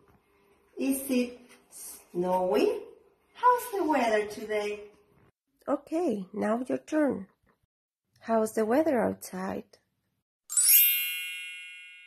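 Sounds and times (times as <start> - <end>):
bright chime ringing: 10.5 - 12.0.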